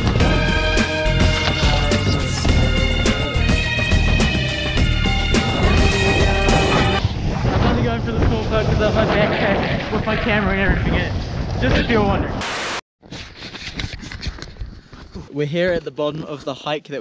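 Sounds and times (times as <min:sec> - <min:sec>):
indistinct voices: 0:00.2 - 0:04.3
wind buffeting microphone: 0:05.2 - 0:12.4.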